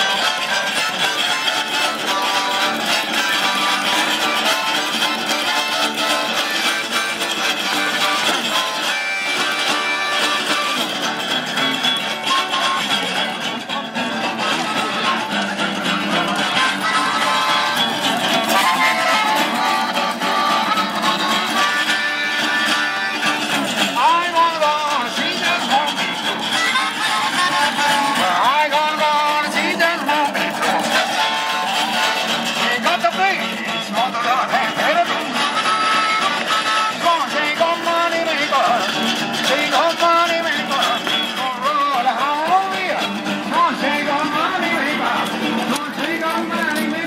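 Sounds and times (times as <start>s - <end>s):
electric guitar playing blues: 0.0s - 47.0s
harmonica bending notes: 0.0s - 47.0s.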